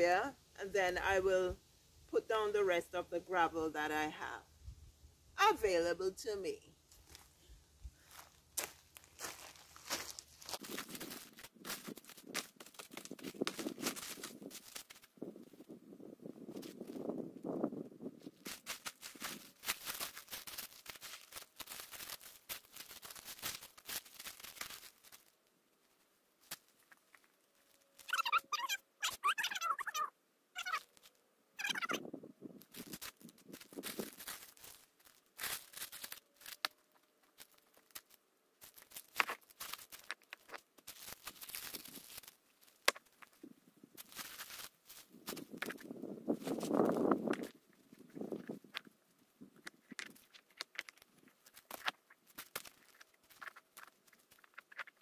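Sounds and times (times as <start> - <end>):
stones clicking on tarp: 8.1 - 15.1, 18.3 - 25.3, 32.6 - 43.4, 44.0 - 48.9, 49.6 - 55.0
plastic tarp rustling: 18.3 - 25.3, 32.7 - 36.6, 37.3 - 40.2, 40.8 - 42.4, 44.0 - 45.5
short pitched calls: 28.0 - 30.9, 31.6 - 32.1.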